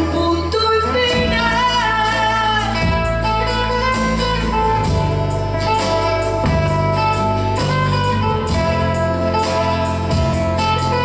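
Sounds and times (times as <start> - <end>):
acoustic guitar: 0.0 - 11.0
electric bass: 0.0 - 11.0.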